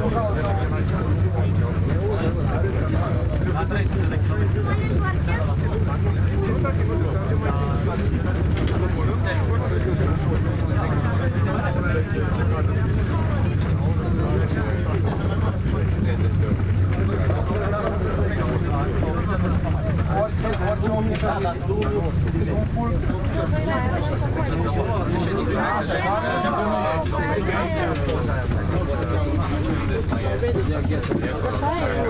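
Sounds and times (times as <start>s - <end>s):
cable car low hum: 0.0s - 32.0s
passengers chattering: 0.0s - 32.0s.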